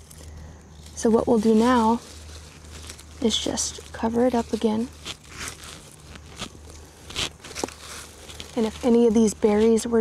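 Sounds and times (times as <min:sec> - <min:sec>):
hand scraping soil and leaves: 0:00.0 - 0:10.0.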